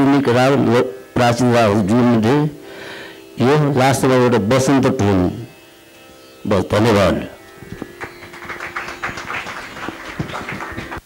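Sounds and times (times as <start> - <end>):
drone held pitch: 0.0 - 11.0
quick plucked strokes: 3.2 - 9.3
microphone handling knocks: 7.6 - 8.0.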